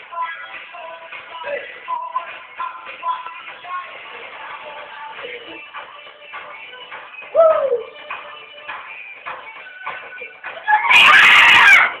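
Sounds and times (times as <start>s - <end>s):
girl screaming: 10.6s - 12.0s.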